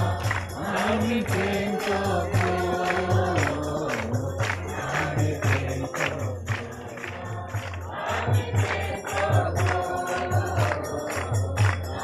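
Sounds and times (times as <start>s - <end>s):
group singing gospel: 0.0s - 12.0s
jingling tambourine: 0.0s - 12.0s.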